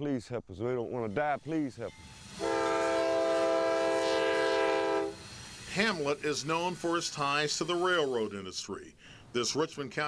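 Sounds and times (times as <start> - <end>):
locomotive air horn blast: 2.2 - 5.4.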